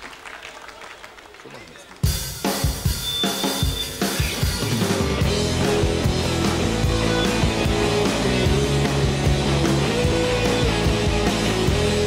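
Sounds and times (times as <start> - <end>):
drum kit playing driving beat: 2.0 - 12.0
bass notes: 4.6 - 12.0.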